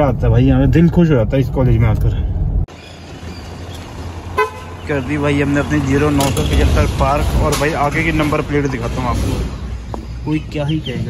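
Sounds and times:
car horn toot: 4.3 - 5.0.

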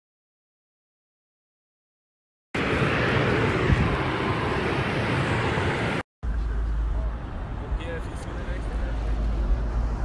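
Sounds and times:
wind on microphone: 2.6 - 5.9.

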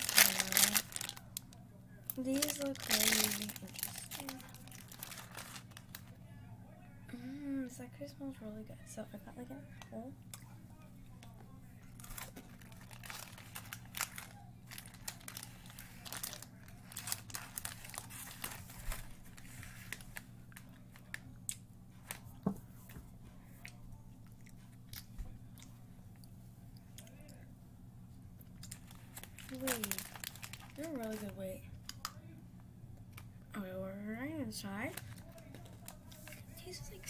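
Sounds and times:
plastic wrapper crinkling: 0.0 - 6.2, 11.2 - 21.2, 28.4 - 32.2, 34.8 - 36.8
steady low hum: 0.0 - 37.0.

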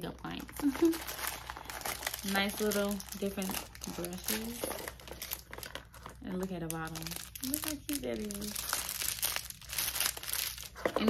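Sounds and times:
plastic crinkling and rustling: 0.2 - 11.0.

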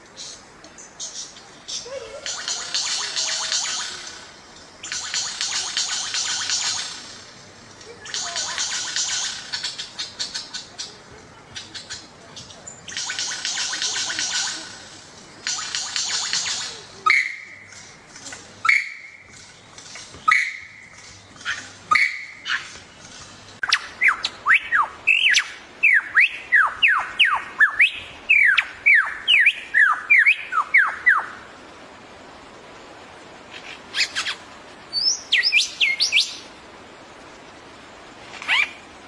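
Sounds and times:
lyrebird rattling buzzes: 0.2 - 11.0, 12.8 - 17.0
bird clicks with whistled notes: 4.8 - 6.9, 12.9 - 14.6, 15.4 - 17.8.

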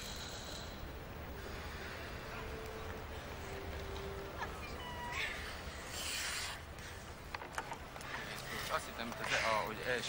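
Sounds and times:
faint arena background noise: 0.0 - 10.0.

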